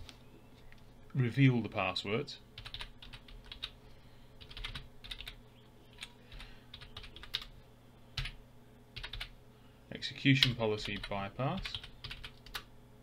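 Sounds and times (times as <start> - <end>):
typing on computer keyboard: 2.6 - 3.7, 4.4 - 5.4, 6.0 - 7.5, 9.0 - 9.3, 10.4 - 12.7.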